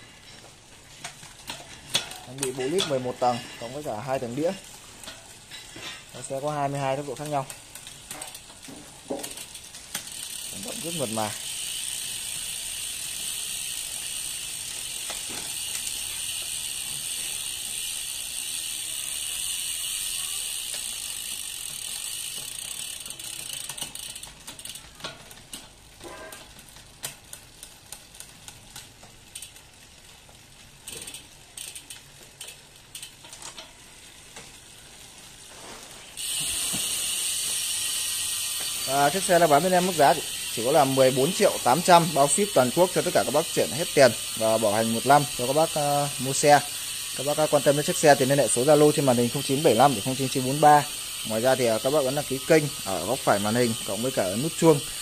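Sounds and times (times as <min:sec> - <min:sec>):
bicycle chain running over sprockets: 0:00.0 - 0:55.0.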